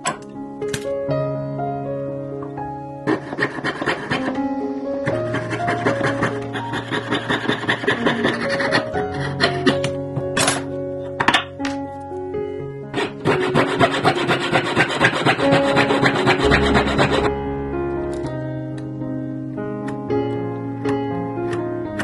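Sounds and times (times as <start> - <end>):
background music: 0.0 - 22.0
hand tool scraping metal plate: 3.1 - 4.4, 5.0 - 9.8, 12.9 - 17.3.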